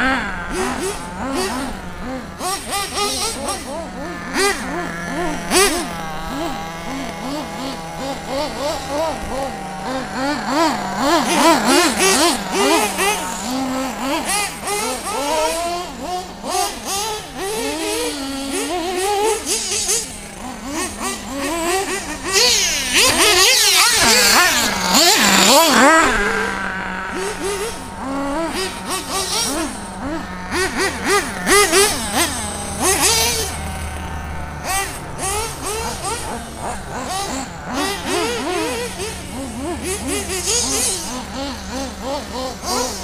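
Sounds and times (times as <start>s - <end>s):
radio-controlled car motors revving: 0.0s - 43.0s.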